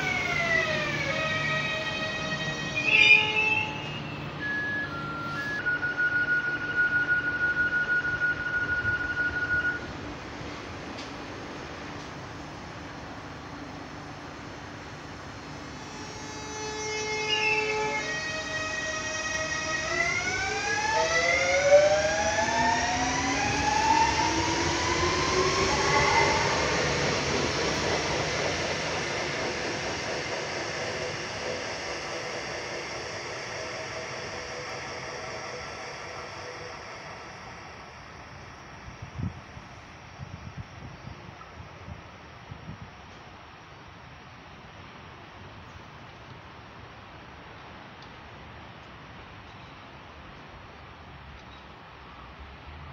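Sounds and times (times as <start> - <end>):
electric train motors whining: 0.0 - 41.4.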